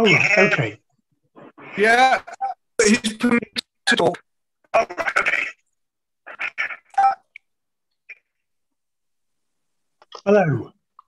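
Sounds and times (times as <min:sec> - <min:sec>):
choppy voice over video call: 0:00.0 - 0:07.4.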